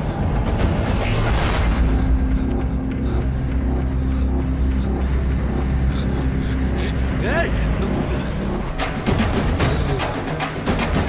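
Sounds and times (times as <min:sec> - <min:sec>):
deep bass drone: 0:00.0 - 0:11.0.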